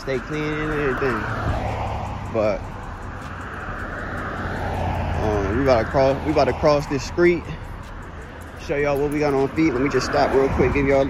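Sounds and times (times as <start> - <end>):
vehicle passing on street: 0.0 - 11.0.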